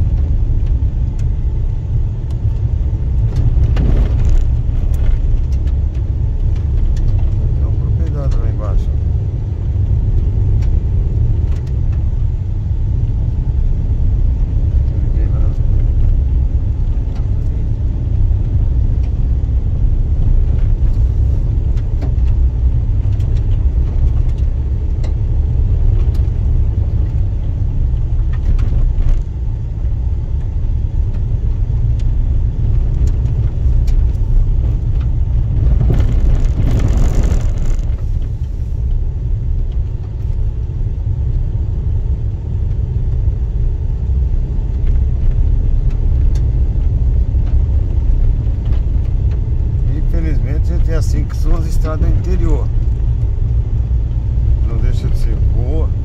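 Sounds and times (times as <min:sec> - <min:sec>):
car tyres and engine rumble: 0:00.0 - 0:56.0
loose stones clicking: 0:34.8 - 0:38.3.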